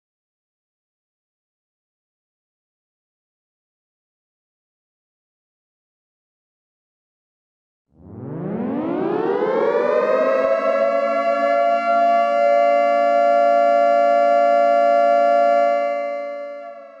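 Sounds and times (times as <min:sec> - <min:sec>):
air-raid siren wailing: 0:08.0 - 0:17.0.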